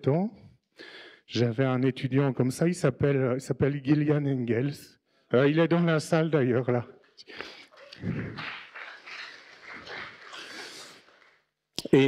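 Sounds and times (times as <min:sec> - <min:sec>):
indistinct audience voices: 0:07.6 - 0:11.4.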